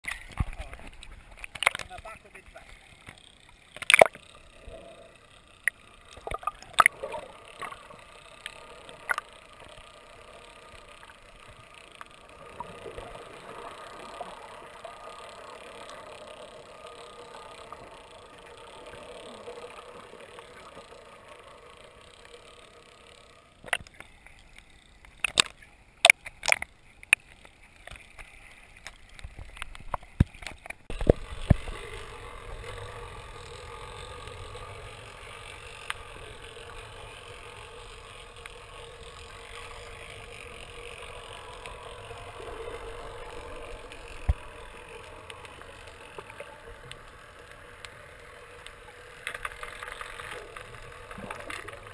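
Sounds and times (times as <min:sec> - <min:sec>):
sharp clicks and knocks: 0:03.0 - 0:04.2.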